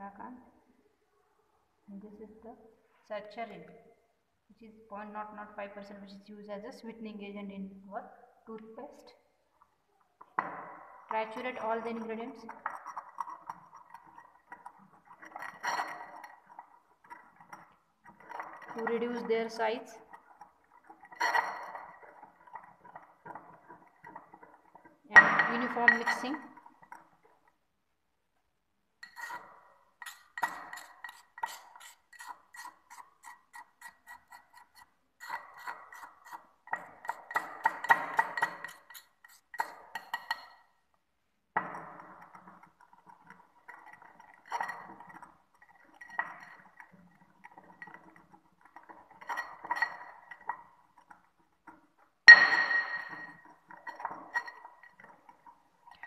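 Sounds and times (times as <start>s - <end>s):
pestle grinding in mortar: 11.4s - 27.6s, 29.0s - 40.7s, 41.6s - 56.0s.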